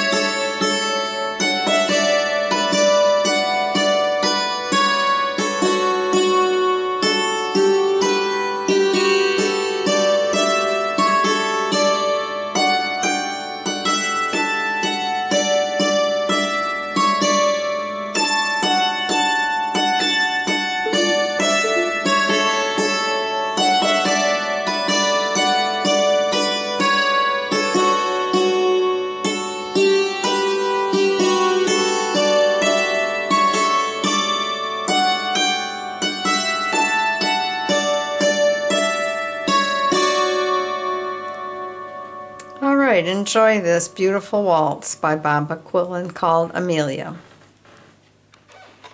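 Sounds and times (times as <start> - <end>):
hammered dulcimer waltz: 0.0 - 44.7.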